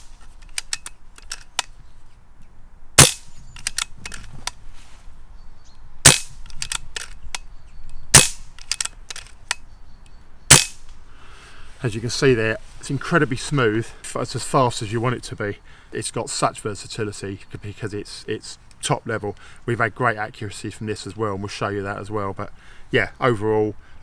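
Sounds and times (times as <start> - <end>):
air rifle shots: 3.0 - 3.8, 6.0 - 6.4, 8.1 - 8.8, 10.5 - 10.8
rifle lever clicks: 3.0 - 4.3, 6.1 - 9.6.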